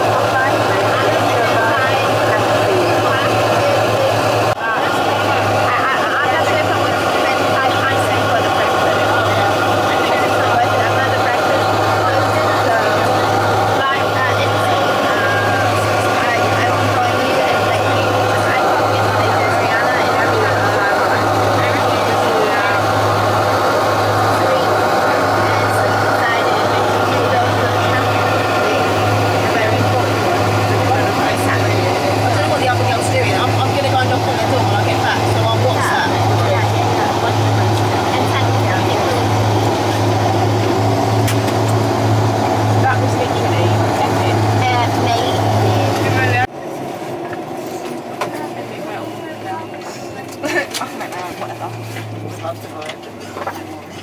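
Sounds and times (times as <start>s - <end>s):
aircraft engine drone in cabin: 0.0s - 54.0s
throbbing propeller hum: 0.0s - 54.0s.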